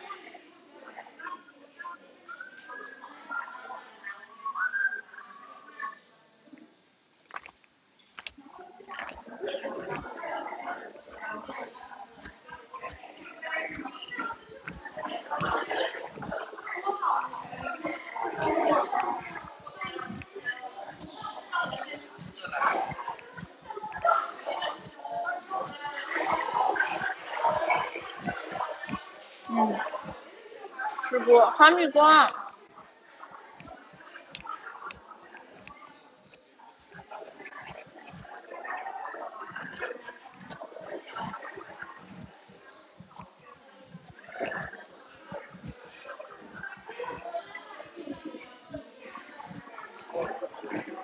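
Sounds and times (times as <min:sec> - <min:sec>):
chewing and mouth noises: 0:07.2 - 0:30.3, 0:32.3 - 0:51.0.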